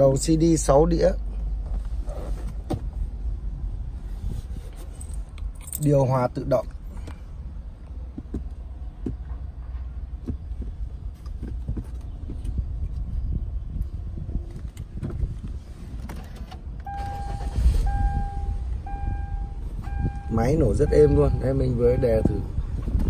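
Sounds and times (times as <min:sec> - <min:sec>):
low steady cabin hum: 0:06.6 - 0:23.0
car engine starting and idling: 0:14.5 - 0:23.0
dashboard warning chime: 0:16.9 - 0:22.6.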